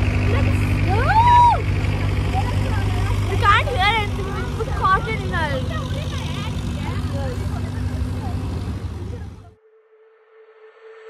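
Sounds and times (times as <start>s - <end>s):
loud low rumble: 0.0s - 9.6s
people's voices: 0.0s - 9.6s.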